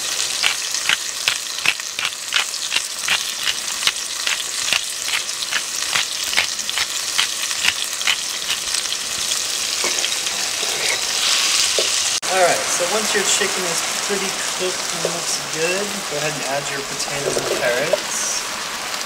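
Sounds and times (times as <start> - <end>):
chicken sizzling in oil: 0.0 - 19.0
pepper grinder clicking: 0.3 - 8.9.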